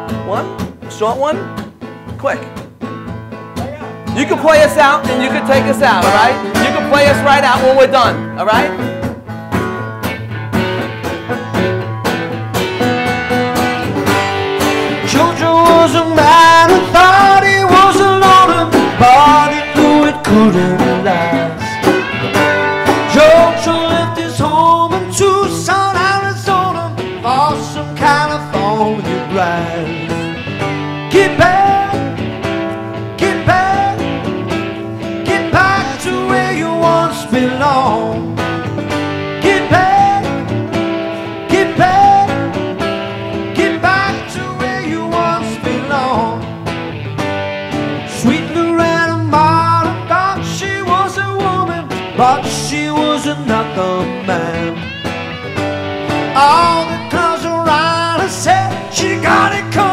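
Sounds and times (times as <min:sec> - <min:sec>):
electric guitar: 0:00.0 - 0:59.9
strummed acoustic guitar: 0:00.0 - 0:59.9
man singing: 0:03.6 - 0:09.0, 0:14.8 - 0:22.1, 0:22.8 - 0:30.4, 0:31.0 - 0:32.4, 0:33.0 - 0:46.6, 0:48.0 - 0:55.1, 0:56.2 - 0:59.9.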